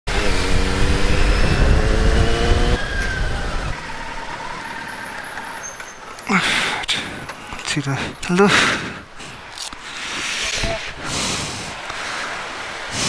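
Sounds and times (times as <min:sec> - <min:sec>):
vehicle engine deep rumble: 0:00.1 - 0:08.3
road rumble: 0:00.1 - 0:13.0.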